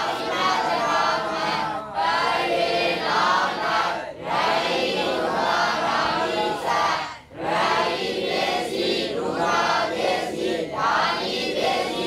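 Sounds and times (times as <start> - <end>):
group chanting in unison: 0.0 - 12.0.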